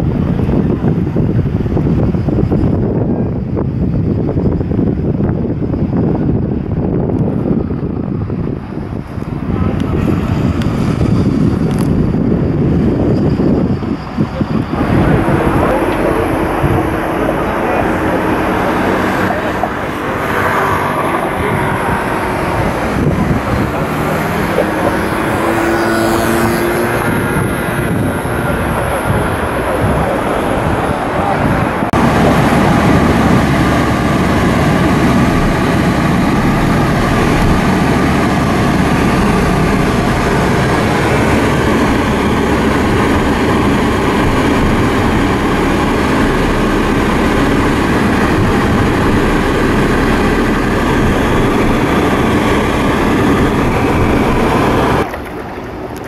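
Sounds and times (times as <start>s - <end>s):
boat engine and wind noise: 0.0s - 56.0s
car engine and road noise: 0.0s - 56.0s.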